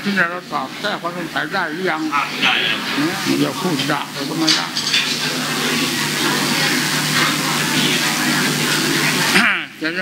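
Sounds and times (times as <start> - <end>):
loud steady hiss: 0.0 - 9.5
faint voices murmuring: 0.8 - 9.8.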